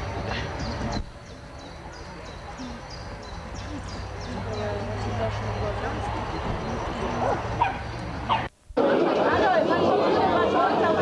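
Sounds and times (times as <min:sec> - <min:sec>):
faint distant voices: 0:00.0 - 0:11.0
dog yipping: 0:07.2 - 0:08.5.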